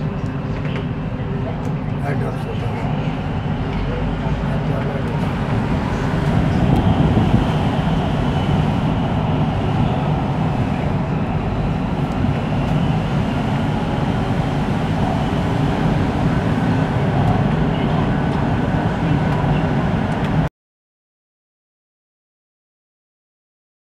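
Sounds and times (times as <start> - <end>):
metro train running in tunnel: 0.0 - 20.5
steel wheels rumbling on rail: 0.0 - 20.5.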